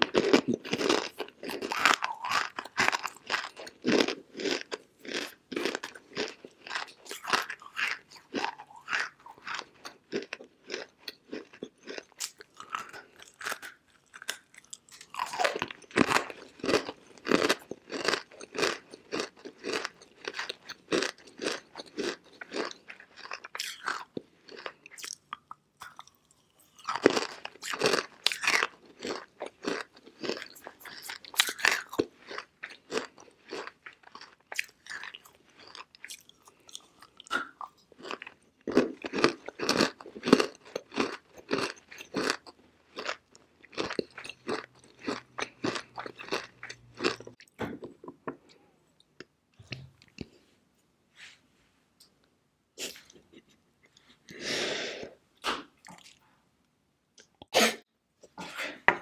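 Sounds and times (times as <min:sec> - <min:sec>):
clay chunks crunching when chewed: 0:00.0 - 0:50.4, 0:55.4 - 0:56.2.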